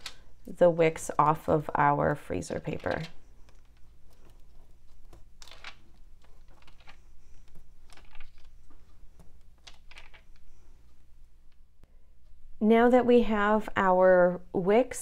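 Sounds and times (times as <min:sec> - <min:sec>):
paper rustling and crinkling: 0:02.4 - 0:10.7.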